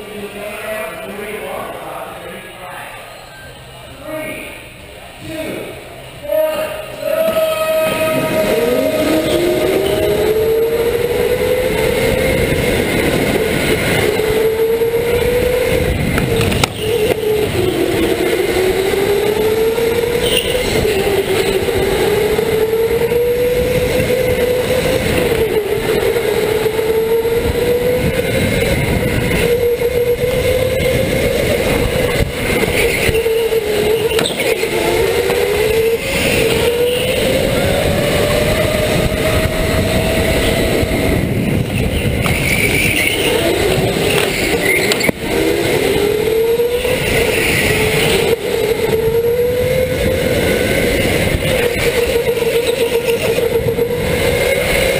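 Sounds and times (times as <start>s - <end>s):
wind and tyre rush: 7.2s - 54.9s
electric motor whining: 7.3s - 54.9s.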